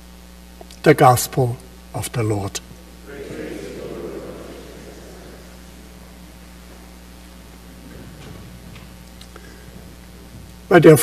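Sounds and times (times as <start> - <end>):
low hum: 2.6 - 10.7.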